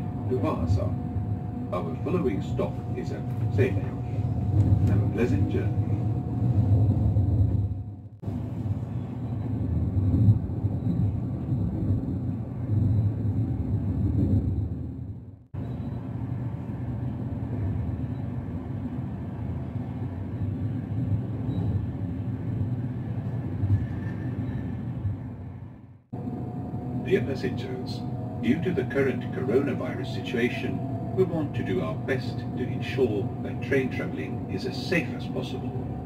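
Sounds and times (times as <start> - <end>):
train wheels rumbling on rails: 0.0 - 36.0.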